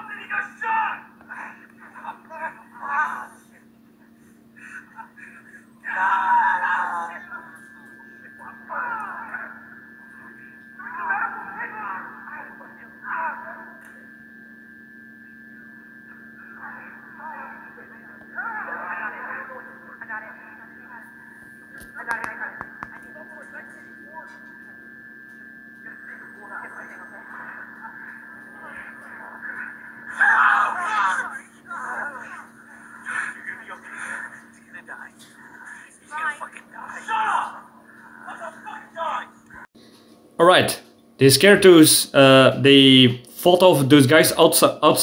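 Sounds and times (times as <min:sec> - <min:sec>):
voices through laptop speakers: 0:00.0 - 0:14.1, 0:16.0 - 0:24.8, 0:25.8 - 0:39.7
electrical hum: 0:00.0 - 0:45.0.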